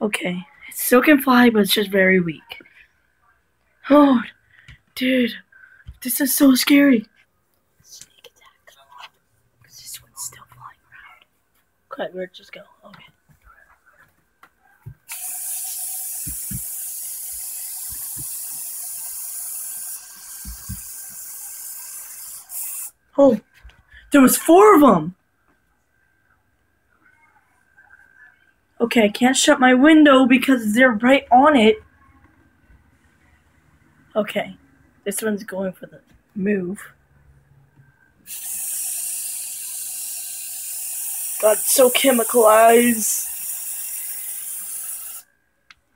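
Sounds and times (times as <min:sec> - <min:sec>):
aerosol spray can hissing: 0:15.0 - 0:23.0, 0:38.2 - 0:45.3.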